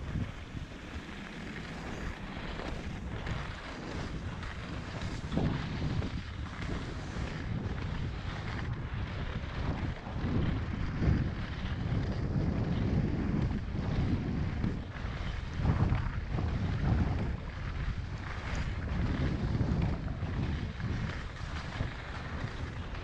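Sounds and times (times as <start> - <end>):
skis scraping on packed snow: 0.0 - 23.0
wind rushing over microphone: 0.0 - 23.0.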